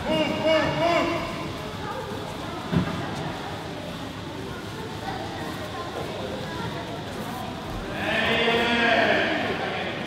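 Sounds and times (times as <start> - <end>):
crowd murmur and shuffling: 0.0 - 10.0.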